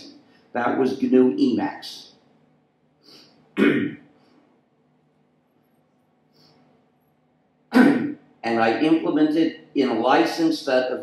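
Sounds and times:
short intake of breath: 0:03.0 - 0:03.4
man clearing his throat: 0:03.6 - 0:04.1, 0:07.7 - 0:08.2.

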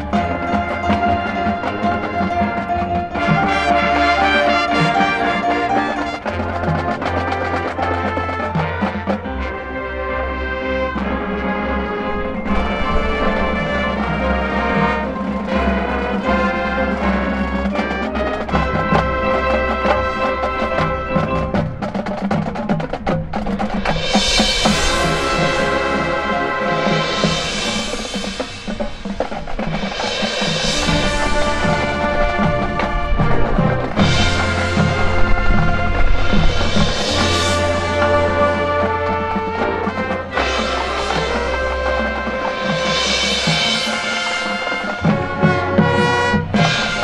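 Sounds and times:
sustained wind chords: 0:00.0 - 0:22.6, 0:23.2 - 0:47.0
drumline percussion: 0:00.0 - 0:47.0.

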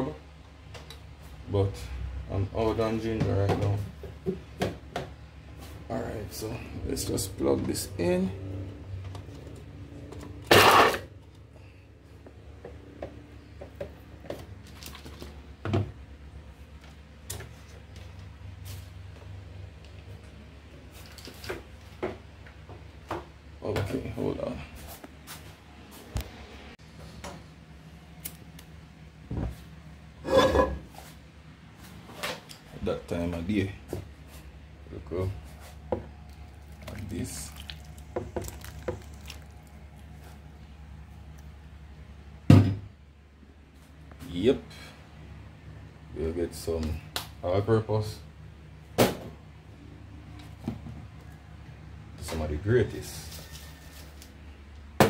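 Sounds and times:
steady low hum: 0:00.0 - 0:55.0
kitchenware clattering: 0:30.2 - 0:30.9.

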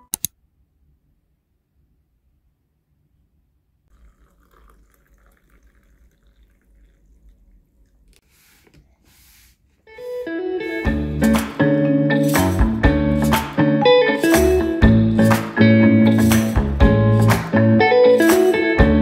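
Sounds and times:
water trickling into mug: 0:03.9 - 0:08.2
music with guitar and drums: 0:09.9 - 0:19.0.

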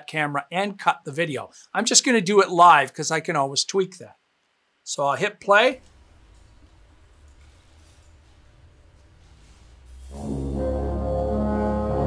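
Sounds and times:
wind band playing chords: 0:10.0 - 0:12.0.

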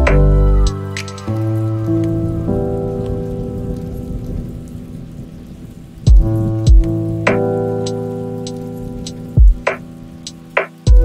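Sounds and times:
falling rain: 0:00.0 - 0:11.0
slow ambient music: 0:00.0 - 0:11.0.

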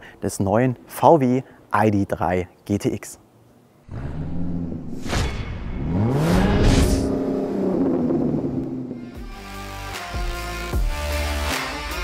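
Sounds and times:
whooshing sweeps: 0:03.9 - 0:09.3
engine revving: 0:03.9 - 0:09.4
music with steady beat: 0:09.0 - 0:12.0.

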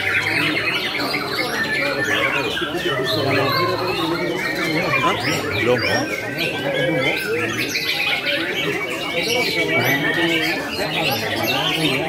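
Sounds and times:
birds singing trills and whistles: 0:00.0 - 0:12.0
crowd murmur: 0:00.0 - 0:12.0.

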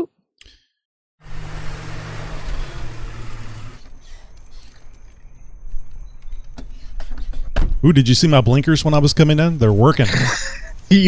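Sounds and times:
vehicle engine hum: 0:01.2 - 0:10.9.

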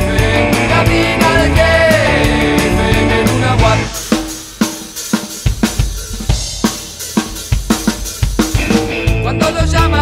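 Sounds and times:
low bass: 0:00.0 - 0:03.9, 0:08.8 - 0:10.0
rock drum kit playing: 0:00.0 - 0:10.0.

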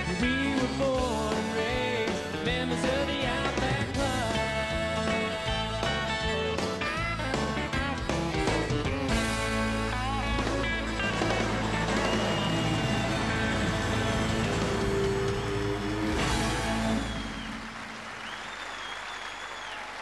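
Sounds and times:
live country band playing: 0:00.0 - 0:18.1
crowd applauding and cheering: 0:00.0 - 0:20.0
whistles: 0:11.6 - 0:20.0.

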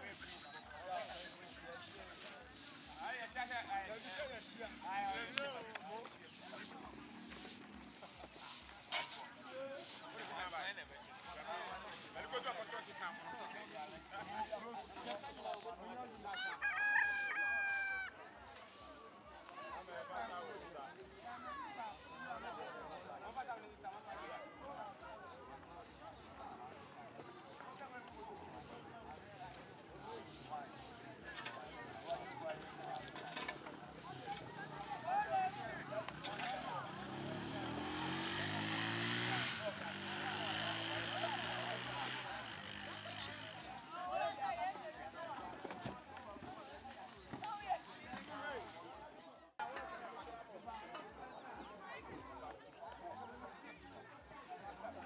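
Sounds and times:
crowd chatter: 0:00.0 - 0:55.0
motorcycle engine passing: 0:06.5 - 0:08.2, 0:34.2 - 0:44.0
rooster crowing: 0:16.3 - 0:18.1.

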